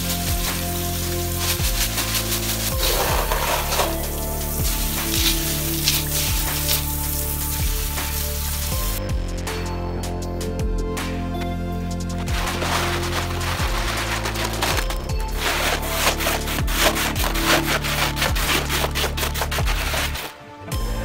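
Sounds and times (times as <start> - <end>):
gravel rattling on plastic: 0.0 - 9.0, 12.1 - 20.4
background music: 0.0 - 21.0.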